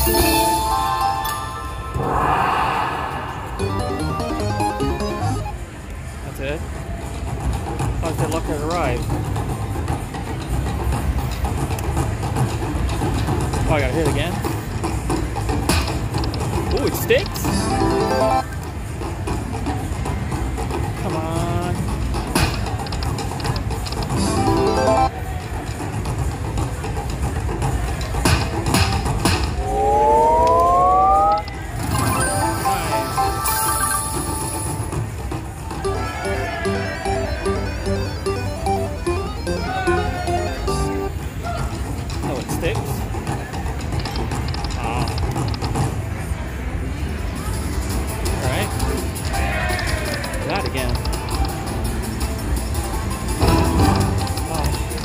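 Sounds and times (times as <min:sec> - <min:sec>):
casino noise: 0:00.0 - 0:02.0, 0:03.5 - 0:05.7, 0:15.9 - 0:18.6, 0:22.5 - 0:26.1, 0:29.0 - 0:46.0, 0:47.6 - 0:55.0
slot machine jingles: 0:00.0 - 0:02.0, 0:03.6 - 0:05.7, 0:16.8 - 0:18.6, 0:24.1 - 0:25.2, 0:29.6 - 0:35.0, 0:35.8 - 0:41.4, 0:50.4 - 0:55.0
rising sweep: 0:00.9 - 0:05.6, 0:29.6 - 0:33.9
repeated beeping tones: 0:03.5 - 0:05.6, 0:29.6 - 0:34.9, 0:35.8 - 0:41.2.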